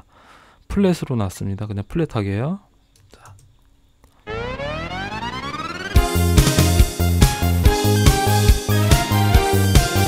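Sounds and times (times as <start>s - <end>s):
electronic tone gliding upward: 4.2s - 7.6s.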